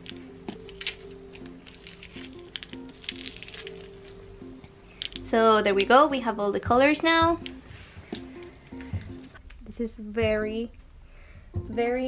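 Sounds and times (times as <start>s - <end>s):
soft background music: 0.0s - 12.0s
plastic markers clicking and tapping: 5.0s - 5.3s.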